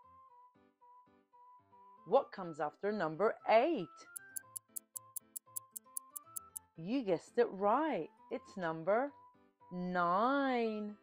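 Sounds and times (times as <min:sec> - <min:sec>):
soft background music: 0:00.0 - 0:11.0
clock ticking: 0:04.2 - 0:06.6.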